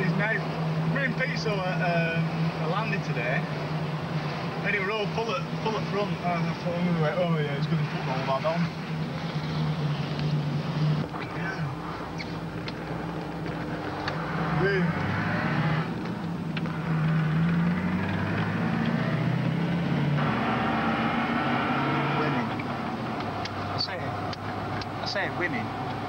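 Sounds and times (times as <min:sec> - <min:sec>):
car engine running: 0:00.0 - 0:26.0.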